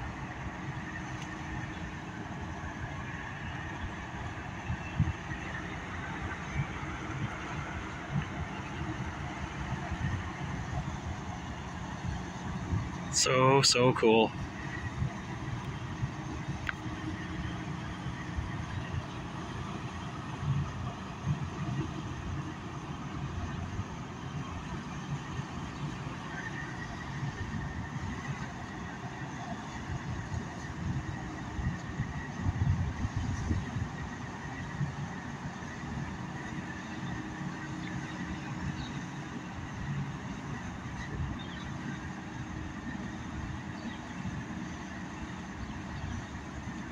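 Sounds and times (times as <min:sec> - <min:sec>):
ship diesel engine rumble: 0:00.0 - 0:46.9.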